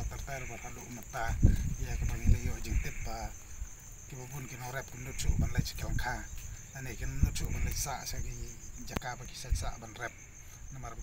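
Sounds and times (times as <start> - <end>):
man talking: 0.0 - 3.4, 4.1 - 11.0
high-pitched insect trill: 0.0 - 11.0.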